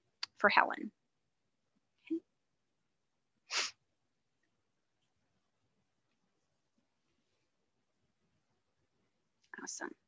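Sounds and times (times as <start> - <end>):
sharp breath through nose: 3.5 - 3.8.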